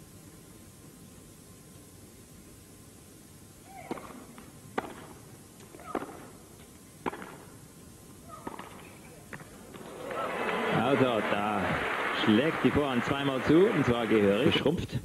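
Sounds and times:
tennis ball struck by rackets: 0:03.8 - 0:05.2, 0:07.0 - 0:07.5, 0:08.3 - 0:09.9.

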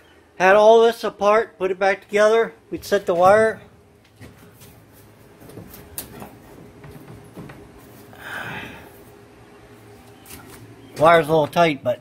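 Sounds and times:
wires rustling: 0:02.8 - 0:08.2.

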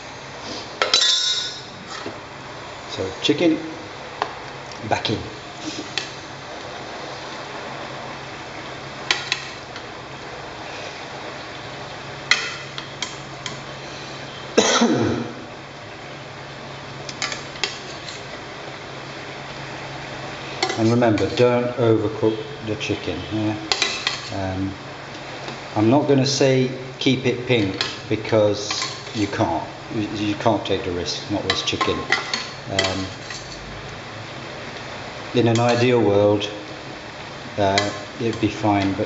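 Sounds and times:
steady hiss with low hum: 0:00.0 - 0:39.0.

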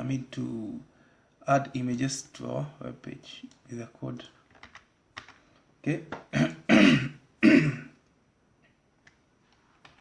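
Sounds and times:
person clearing throat: 0:06.3 - 0:08.0.

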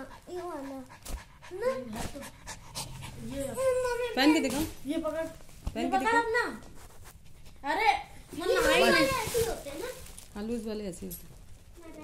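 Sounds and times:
dog panting: 0:00.0 - 0:04.2.

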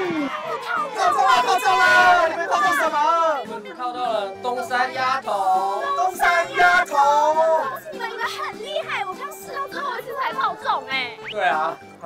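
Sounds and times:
excited voices talking: 0:00.0 - 0:11.8
background music: 0:00.0 - 0:12.0.

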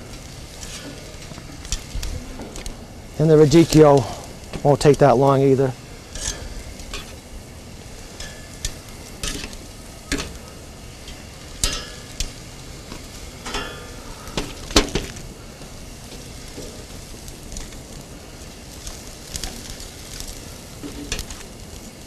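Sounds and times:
vegetables sizzling on a grill: 0:00.0 - 0:22.0
metal tongs clicking on grate: 0:08.2 - 0:10.4, 0:11.0 - 0:12.4, 0:13.4 - 0:13.9.

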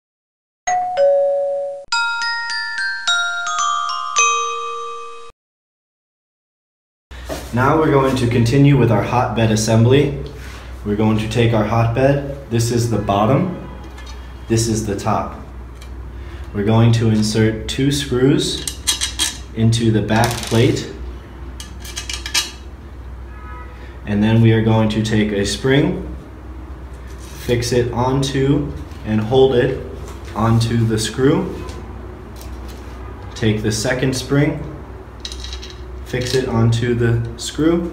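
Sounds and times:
bright glockenspiel-like music: 0:00.7 - 0:05.3
two-note chime: 0:00.7 - 0:05.3
screws clinking against metal plate: 0:18.6 - 0:19.5, 0:21.6 - 0:22.6, 0:35.2 - 0:36.4.

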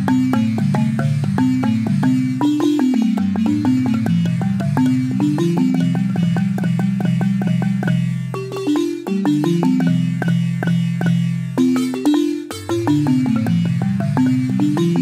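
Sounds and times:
wooden xylophone played with mallets: 0:00.0 - 0:15.0.

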